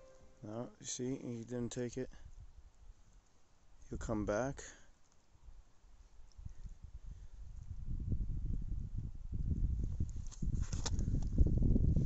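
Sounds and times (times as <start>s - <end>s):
wind buffeting microphone: 6.4s - 12.0s.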